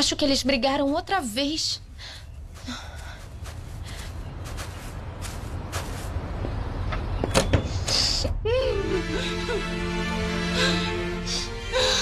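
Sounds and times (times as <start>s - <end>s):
low background rumble: 0.0s - 12.0s
soft footsteps: 2.2s - 6.7s.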